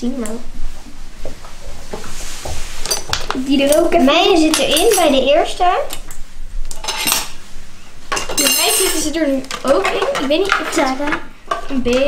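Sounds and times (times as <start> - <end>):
hard objects clattering on stone countertop: 8.1 - 12.0.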